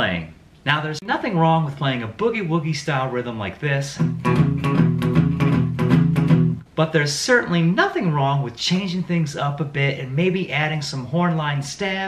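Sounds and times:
electric guitar shuffle rhythm: 3.8 - 6.7.

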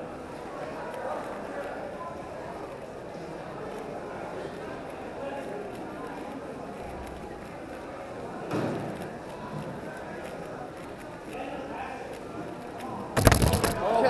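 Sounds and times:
plastic puzzle cube clicking: 13.2 - 13.8.

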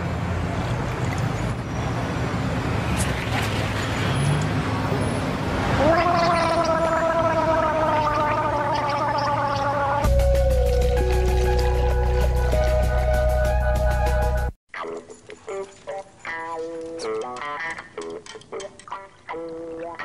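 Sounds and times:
person gargling: 5.8 - 10.1
heavy bass music: 10.0 - 14.6.

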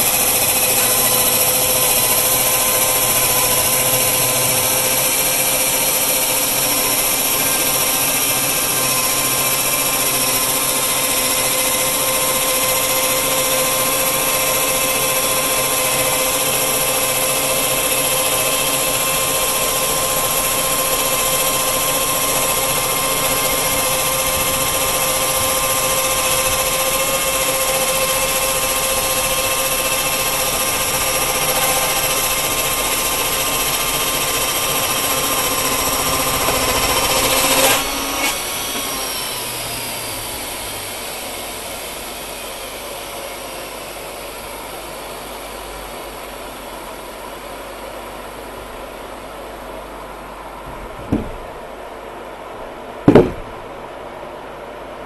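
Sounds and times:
saw spinning down: 0.0 - 45.4
sawmill saw whining: 0.0 - 50.0
sharp clunk: 51.1 - 51.4, 53.1 - 53.6.

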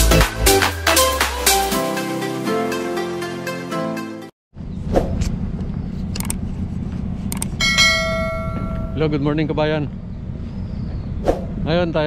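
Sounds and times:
steady low rumble: 4.6 - 12.0
bell-like ringing tone: 7.6 - 9.2.

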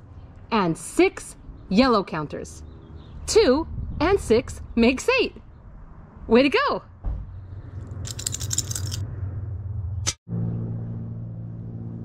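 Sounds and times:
steady low rumble: 1.3 - 10.2.

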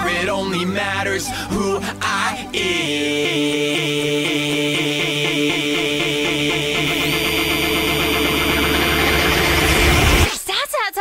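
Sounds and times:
electronic pop music: 0.0 - 10.6.

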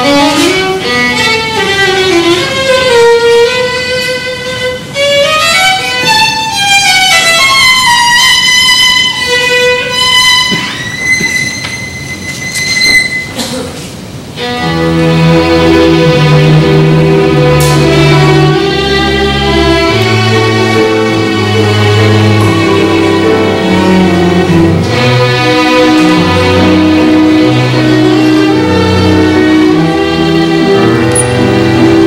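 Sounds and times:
solo violin playing: 0.0 - 13.3, 14.3 - 32.0
small ensemble accompanying: 0.0 - 32.0.

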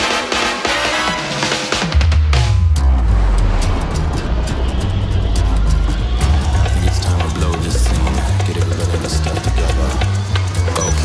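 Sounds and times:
music with sharp percussion hits: 0.0 - 11.0
spaceship engine rumble: 2.4 - 9.2.

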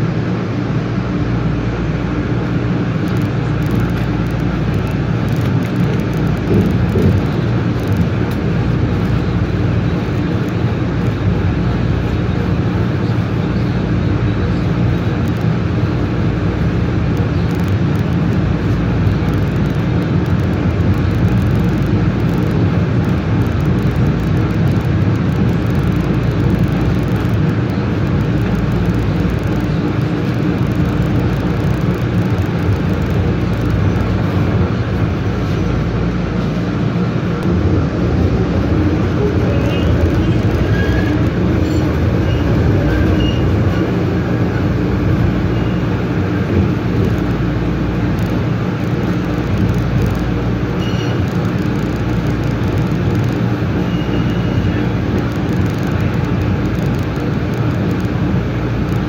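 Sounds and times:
train wheels rumbling on rail: 0.0 - 59.0.

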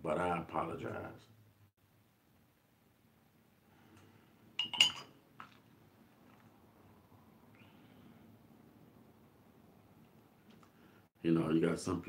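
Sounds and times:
ceramic mug clinking: 4.6 - 5.6.

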